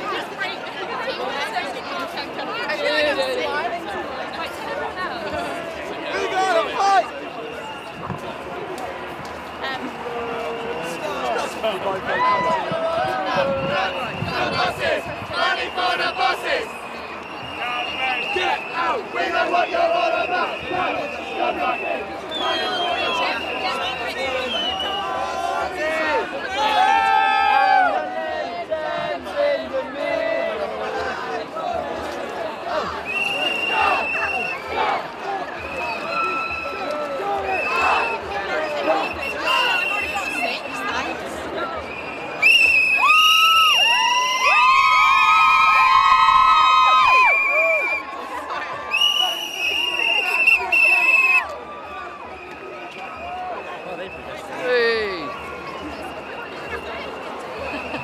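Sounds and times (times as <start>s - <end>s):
crowd talking and shouting: 0.0s - 58.0s.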